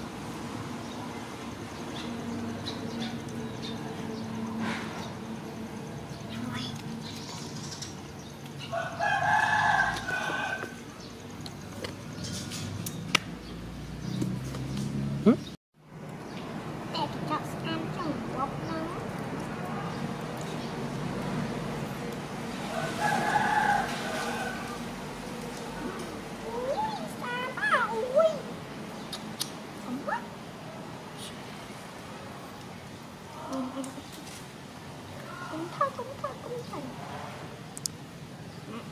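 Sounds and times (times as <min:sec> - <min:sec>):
rooster crowing: 0:08.6 - 0:10.8, 0:22.6 - 0:24.9.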